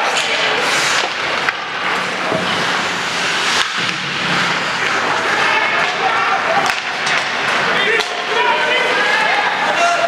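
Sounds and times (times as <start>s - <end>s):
arena noise: 0.0s - 10.0s
skates scraping ice: 0.0s - 10.0s
sharp hockey clack: 3.5s - 4.2s.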